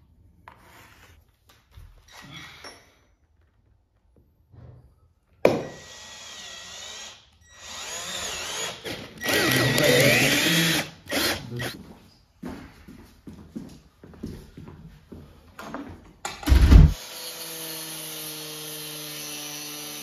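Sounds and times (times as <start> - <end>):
cordless drill boring into wood: 5.7 - 11.8.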